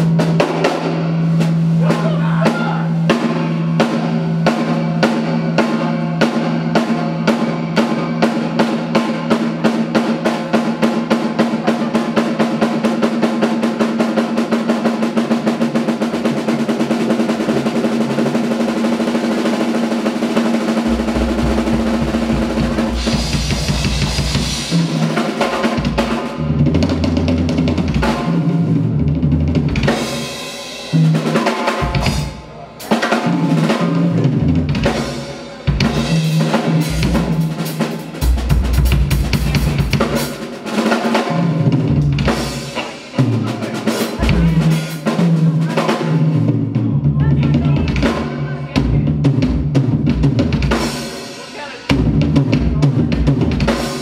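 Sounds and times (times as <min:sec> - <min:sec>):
snare drum roll: 0:00.0 - 0:30.2
drum fills on toms and cymbals: 0:00.0 - 0:54.0
cymbal crash: 0:20.2 - 0:26.4
bass drum: 0:20.6 - 0:30.2, 0:30.9 - 0:40.4, 0:41.4 - 0:50.9, 0:51.9 - 0:54.0.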